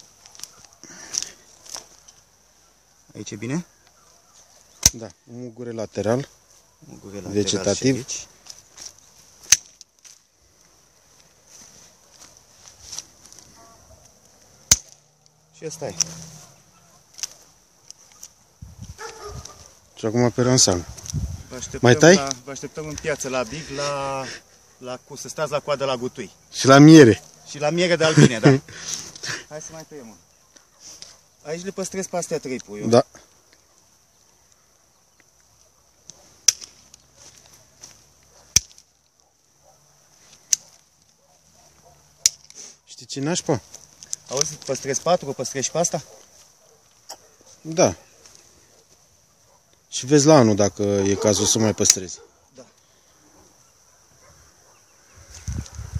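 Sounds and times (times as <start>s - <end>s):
pruning shears snipping: 4.8s - 5.0s, 8.5s - 10.2s, 14.2s - 16.3s, 17.1s - 19.3s, 36.1s - 37.1s, 38.5s - 38.9s, 40.3s - 41.1s, 42.2s - 42.6s, 43.9s - 44.8s.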